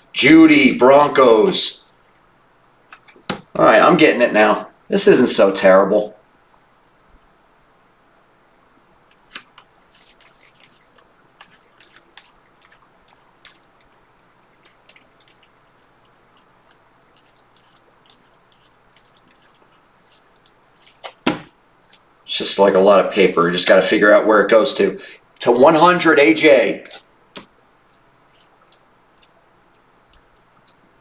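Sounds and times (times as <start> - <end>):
cards clicking and sliding: 9.1 - 13.9, 14.6 - 22.0.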